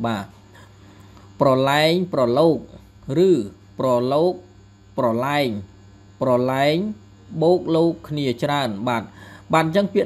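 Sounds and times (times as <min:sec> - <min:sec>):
man speaking slowly: 0:00.0 - 0:00.4
low mains hum: 0:00.0 - 0:10.0.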